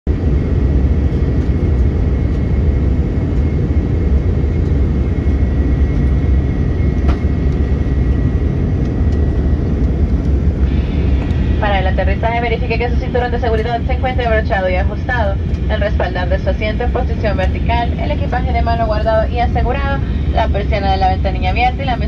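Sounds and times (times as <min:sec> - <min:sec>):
airliner cabin low rumble: 0:00.1 - 0:22.0
thin high whine: 0:10.5 - 0:16.2.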